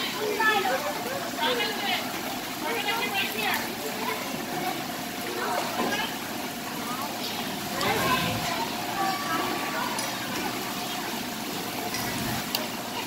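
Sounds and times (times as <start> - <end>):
background voices chattering: 0.0 - 13.0
water splashing and pouring: 0.0 - 13.0.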